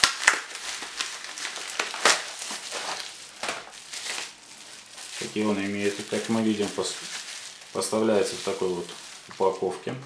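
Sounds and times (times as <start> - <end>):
plastic mailer and bubble wrap crinkling: 0.0 - 10.0.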